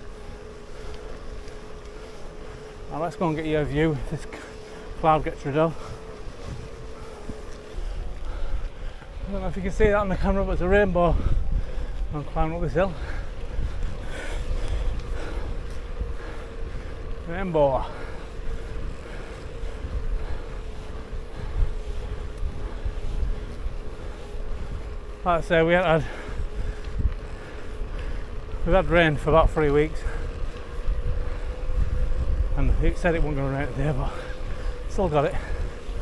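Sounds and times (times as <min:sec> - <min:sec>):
faint steady whine: 0:00.0 - 0:36.0
wind buffeting microphone: 0:00.0 - 0:36.0.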